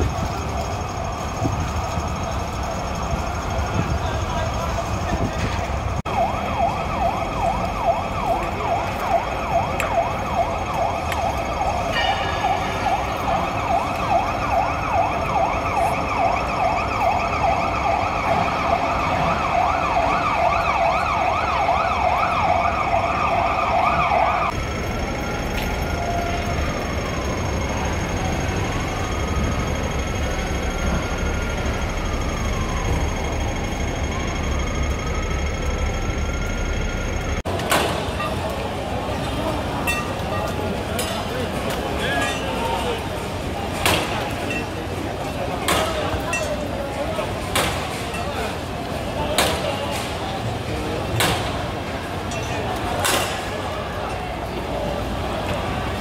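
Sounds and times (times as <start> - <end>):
emergency siren yelp and wail: 0.0 - 49.2.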